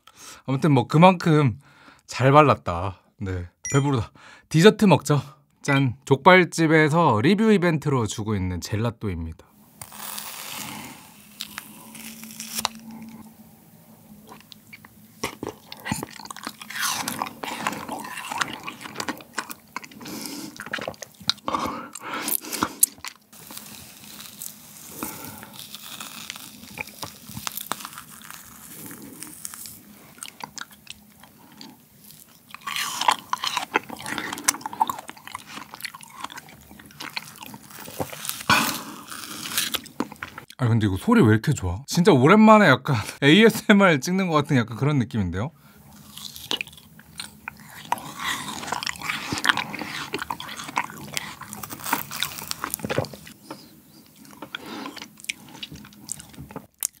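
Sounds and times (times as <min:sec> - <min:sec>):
wet mouth eating sounds: 0:14.1 - 0:40.6, 0:45.9 - 0:57.0.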